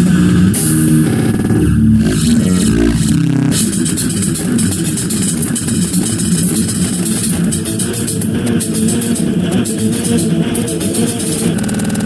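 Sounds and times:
low bass notes: 0.0s - 6.0s
drums and cymbals: 0.0s - 12.0s.

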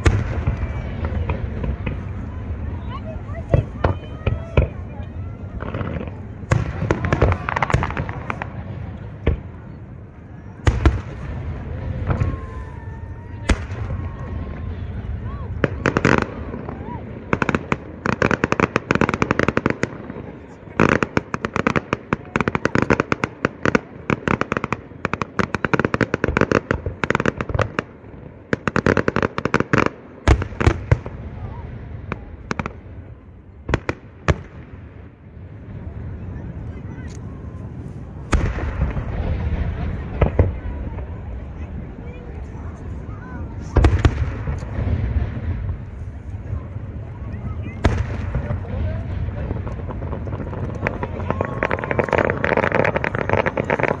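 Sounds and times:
rapid firework crackling: 0.0s - 54.0s.

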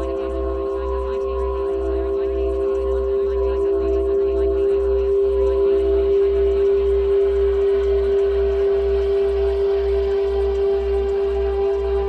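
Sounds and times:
low pulsing throb: 0.0s - 12.0s.

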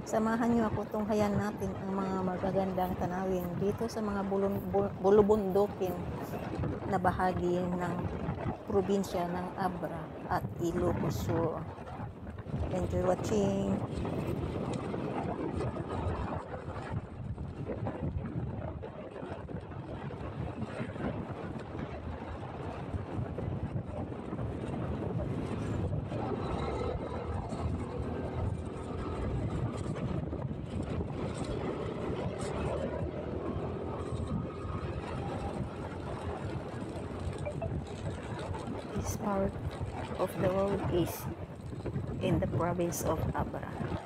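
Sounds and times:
wind noise on microphone: 0.0s - 44.0s.

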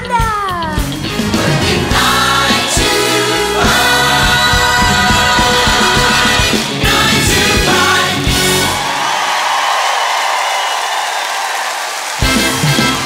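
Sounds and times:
live band playing: 0.0s - 9.0s, 12.2s - 13.0s
ensemble singing: 0.9s - 8.9s
audience applause: 1.1s - 13.0s.

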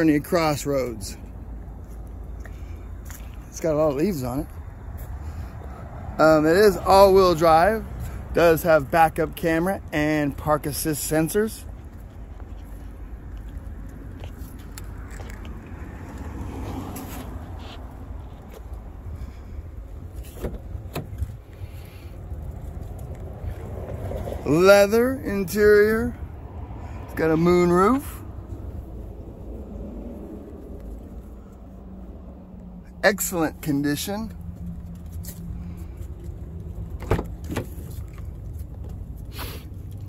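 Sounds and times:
traffic rumble: 0.0s - 40.0s
wind: 0.0s - 40.0s.

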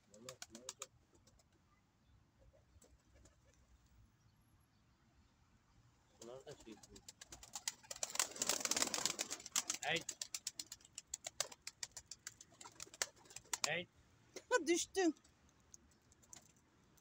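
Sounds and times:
pigeon wings flapping: 0.0s - 1.4s, 6.5s - 13.8s.

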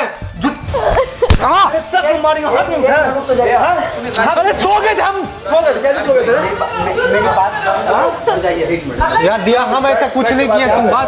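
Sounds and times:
hand slapping a person: 1.2s - 1.6s.

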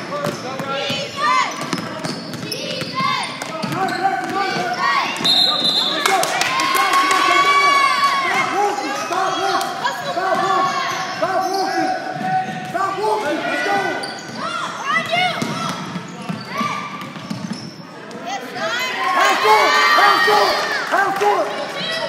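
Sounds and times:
sneakers squeaking: 0.0s - 6.2s, 8.8s - 18.4s.

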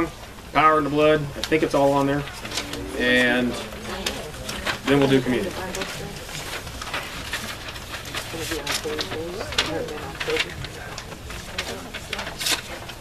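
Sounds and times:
indistinct voices talking: 0.0s - 13.0s
sharp rustles or clicks: 1.4s - 13.0s.

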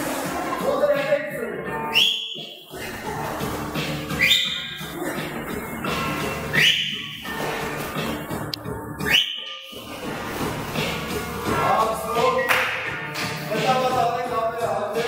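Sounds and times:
music: 0.0s - 15.0s.

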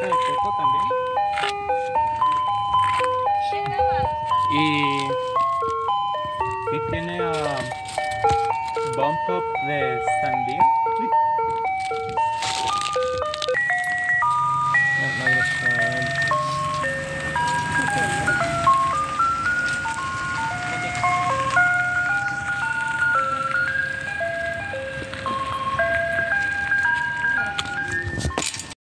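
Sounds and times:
ice cream truck jingle: 0.0s - 28.8s.

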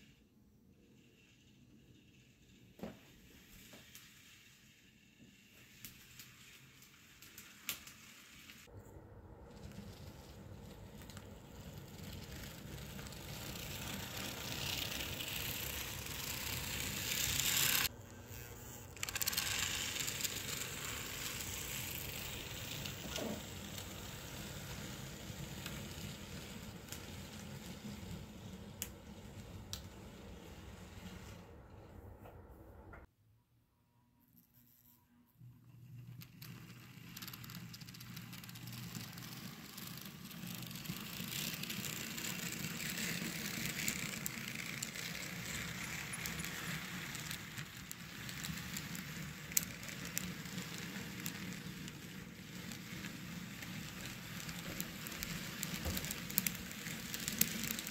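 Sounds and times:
model train rolling rattle: 9.5s - 17.9s, 19.0s - 31.4s, 35.8s - 57.9s.

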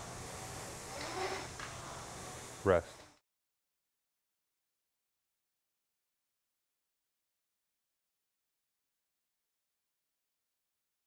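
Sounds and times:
rowing machine fan whirring: 0.0s - 3.2s.

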